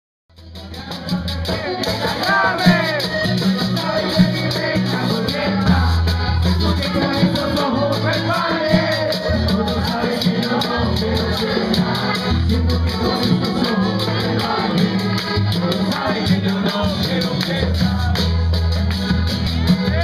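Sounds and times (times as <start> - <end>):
band playing: 0.3 - 20.0
bass line: 0.3 - 20.0
fast rattling percussion: 0.4 - 20.0.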